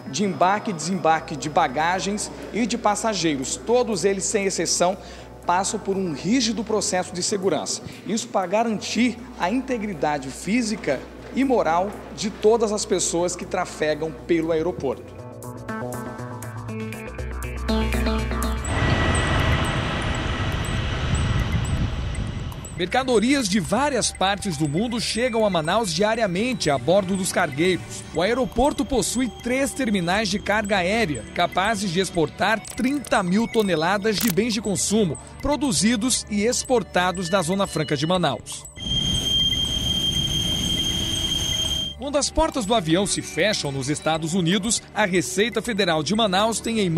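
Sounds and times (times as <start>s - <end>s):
background music: 0.0s - 46.9s
jet turbine whining: 18.2s - 23.8s, 38.8s - 42.0s
jet aircraft engine noise: 18.6s - 22.8s.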